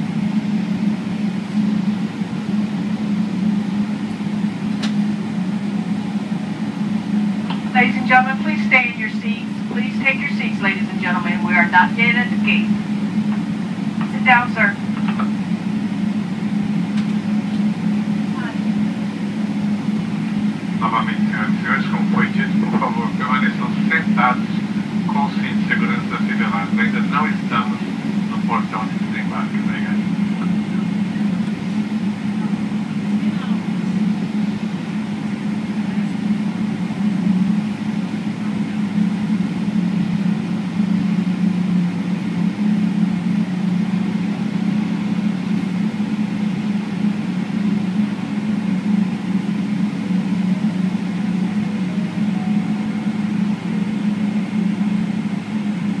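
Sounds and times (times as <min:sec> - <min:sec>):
airplane cabin drone: 0:00.0 - 0:56.0
cabin air system: 0:00.0 - 0:56.0
jet engines idling: 0:00.0 - 0:56.0
faint voices: 0:07.6 - 0:12.8, 0:13.8 - 0:15.5, 0:18.2 - 0:18.8, 0:20.6 - 0:41.1.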